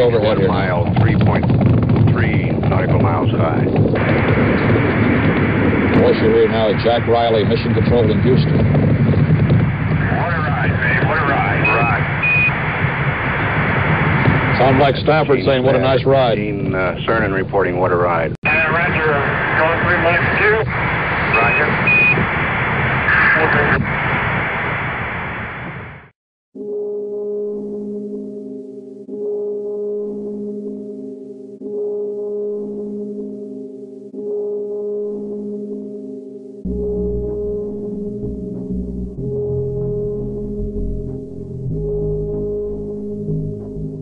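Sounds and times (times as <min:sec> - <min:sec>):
broken radio voice: 0:00.0 - 0:05.1, 0:10.0 - 0:12.2, 0:18.4 - 0:22.2, 0:23.1 - 0:23.9
rocket engines rumbling: 0:00.0 - 0:25.5
radio static hiss: 0:00.0 - 0:25.9
short high beeps: 0:11.6 - 0:12.5.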